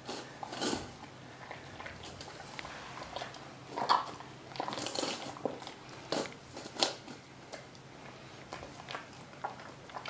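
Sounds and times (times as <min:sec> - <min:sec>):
bear cub chewing: 0:00.2 - 0:10.0.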